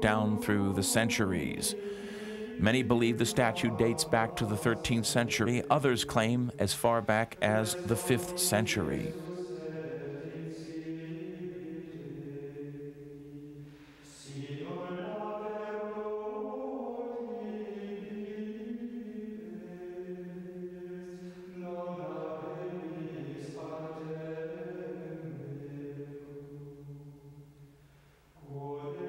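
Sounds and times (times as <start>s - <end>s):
voices chanting sustained notes: 0.0s - 27.0s.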